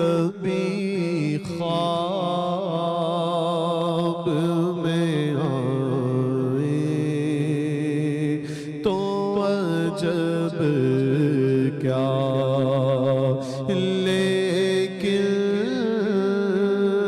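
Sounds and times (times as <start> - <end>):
man singing into microphone: 0.0 - 17.0.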